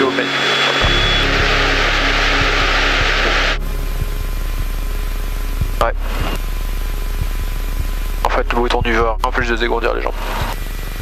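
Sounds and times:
loud hiss: 0:00.0 - 0:08.7.

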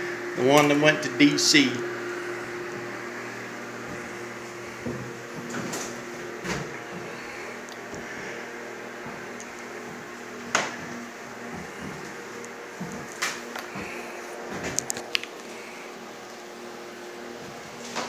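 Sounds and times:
mechanical hum of appliance: 0:00.0 - 0:18.0.

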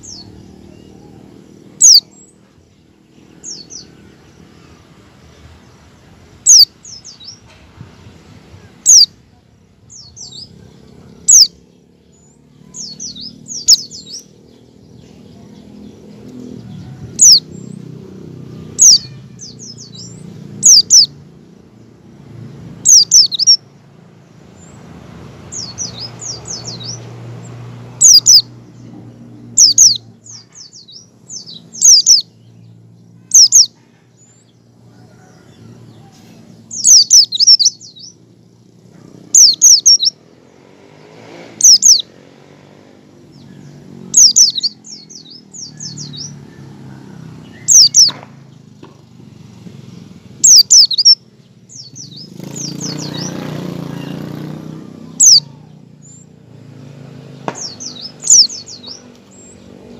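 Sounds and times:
bird giving high chirps: 0:00.0 - 0:04.6, 0:06.3 - 0:07.4, 0:08.6 - 0:11.7, 0:12.6 - 0:17.9, 0:18.6 - 0:21.5, 0:22.8 - 0:23.7, 0:28.0 - 0:28.6, 0:29.4 - 0:32.5, 0:33.1 - 0:33.8, 0:36.6 - 0:40.2, 0:41.6 - 0:42.1, 0:43.4 - 0:46.4, 0:47.5 - 0:48.2, 0:50.4 - 0:56.3, 0:57.6 - 0:59.9.

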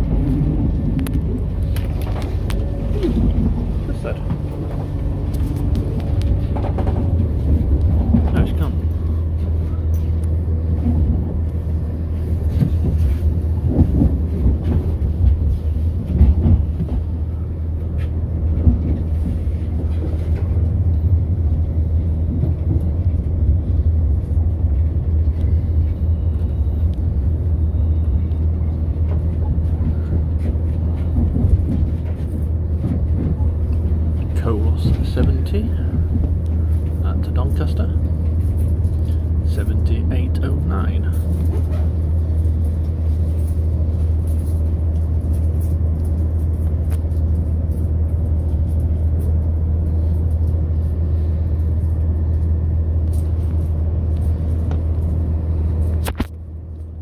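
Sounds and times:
train engine and wheels drone: 0:00.0 - 0:57.0.

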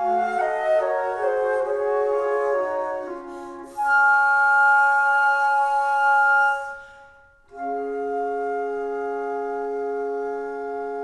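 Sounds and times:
flutes playing sustained chords: 0:00.0 - 0:11.0.

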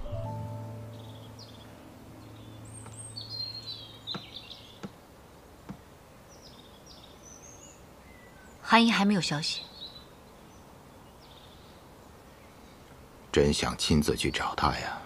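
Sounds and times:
low soundtrack music note: 0:00.0 - 0:04.1
small birds chirping: 0:00.4 - 0:15.0.

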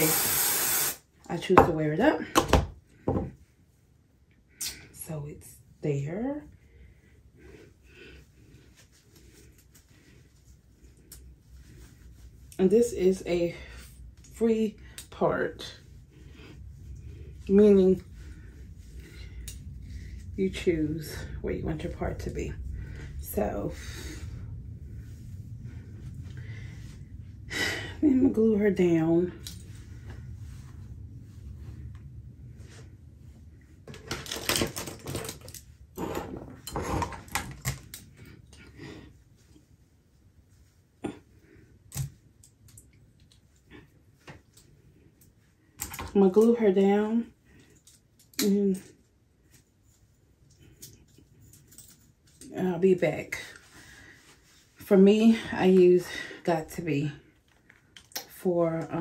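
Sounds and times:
rustling of wig hair: 0:02.8 - 0:59.0.

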